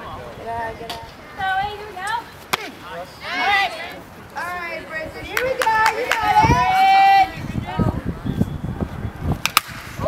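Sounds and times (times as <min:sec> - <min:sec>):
high-pitched shouting voices: 0:03.2 - 0:08.0.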